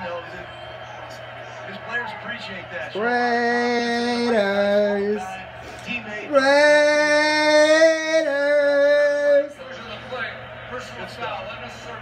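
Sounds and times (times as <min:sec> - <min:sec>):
fan shouting: 0:01.8 - 0:09.6.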